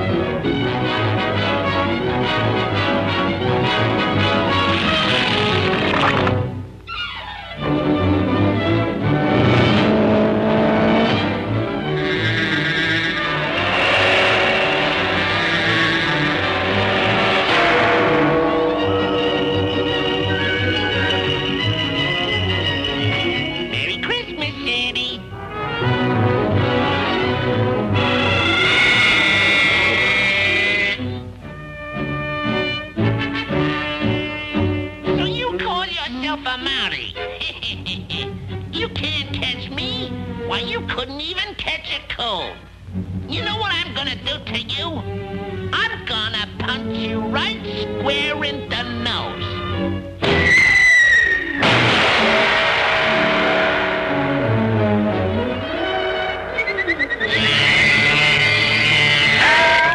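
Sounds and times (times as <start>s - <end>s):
orchestral cartoon music: 0.0s - 41.1s, 42.8s - 59.9s
shimmering cymbal-like wash: 11.9s - 21.7s, 52.0s - 58.8s
high whistle-like tone: 28.4s - 31.1s, 50.4s - 51.7s, 55.4s - 59.9s.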